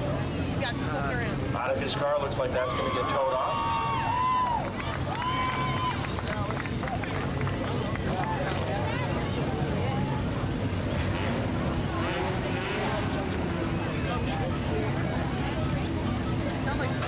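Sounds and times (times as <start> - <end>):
people talking: 0.0 - 4.0, 4.6 - 17.0
race car engines rumbling: 0.0 - 17.0.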